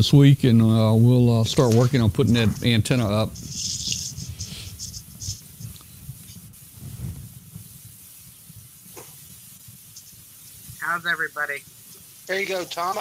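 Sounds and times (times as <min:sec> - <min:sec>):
man speaking: 0:00.0 - 0:03.4, 0:10.8 - 0:11.6, 0:12.3 - 0:13.0
microphone hiss and rumble: 0:00.0 - 0:13.0.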